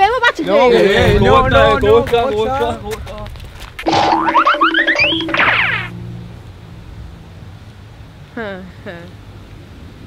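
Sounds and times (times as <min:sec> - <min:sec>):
comic rising notes with boing: 0:03.8 - 0:06.8.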